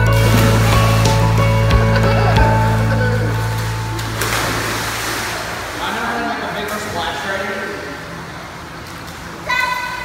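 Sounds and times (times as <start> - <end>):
loud splash into pool: 0.0 - 1.4, 3.6 - 6.1
churning water: 0.0 - 10.0.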